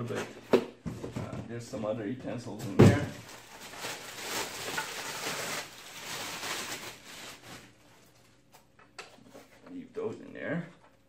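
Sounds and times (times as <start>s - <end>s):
plastic bag crinkling: 3.2s - 8.2s.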